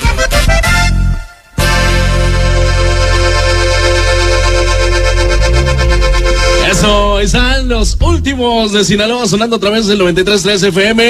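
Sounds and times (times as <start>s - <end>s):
accordion chords: 0.0s - 9.6s
bass: 0.0s - 11.0s.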